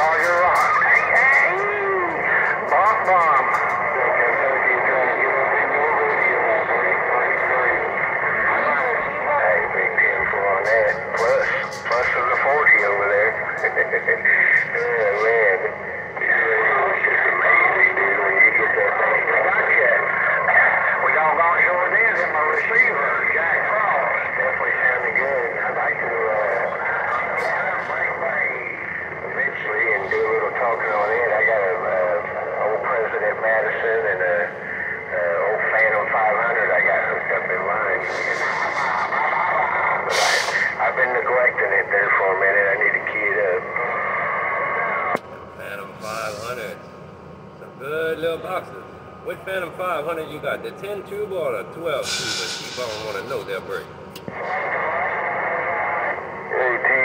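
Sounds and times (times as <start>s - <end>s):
radio static: 0.0s - 46.8s, 47.6s - 57.0s
voices through radio speaker: 0.0s - 57.0s.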